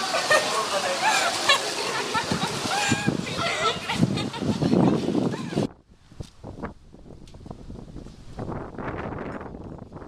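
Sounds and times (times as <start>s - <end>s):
wind rumbling on microphone: 2.1s - 10.0s.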